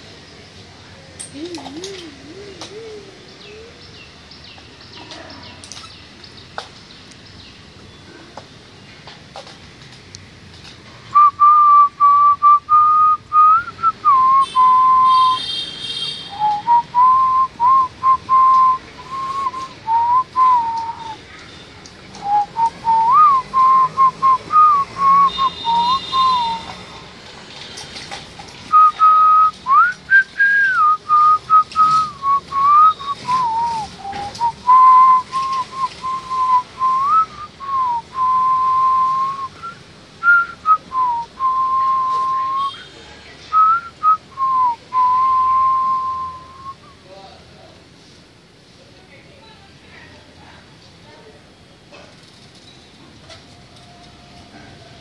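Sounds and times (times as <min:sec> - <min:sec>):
person whistling a slow tune: 0:11.2 - 0:15.4, 0:16.3 - 0:21.2, 0:22.2 - 0:26.7, 0:28.7 - 0:42.8, 0:43.5 - 0:46.9.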